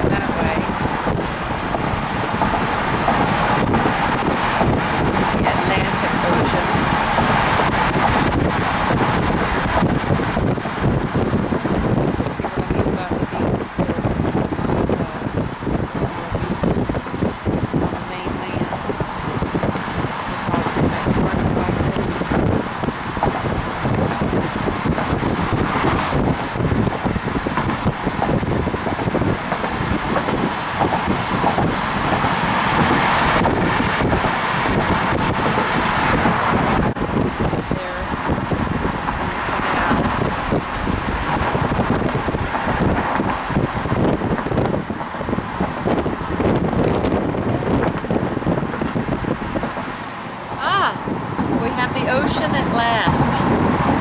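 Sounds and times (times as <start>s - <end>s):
car road noise: 0.0s - 54.0s
wind buffeting microphone: 0.0s - 54.0s.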